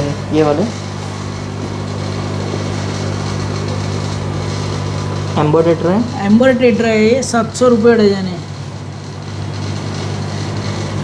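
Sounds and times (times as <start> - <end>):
air pumps humming: 0.0 - 11.0.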